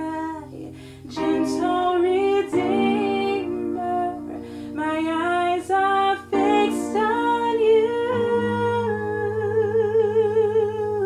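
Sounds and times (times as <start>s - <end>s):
digital piano chords: 0.0s - 11.0s
woman singing long note: 0.0s - 11.0s.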